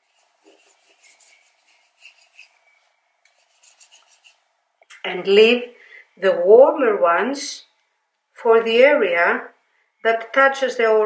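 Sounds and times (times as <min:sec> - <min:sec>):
paintbrush scratching on paper: 0:00.0 - 0:04.5.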